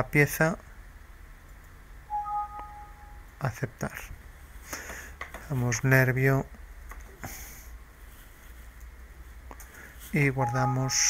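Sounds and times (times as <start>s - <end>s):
two-tone alert chime: 2.1s - 3.2s, 10.4s - 11.0s.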